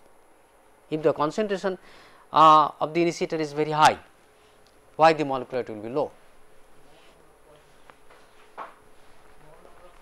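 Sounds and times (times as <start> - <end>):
man speaking: 2.4 - 4.0, 5.0 - 6.2.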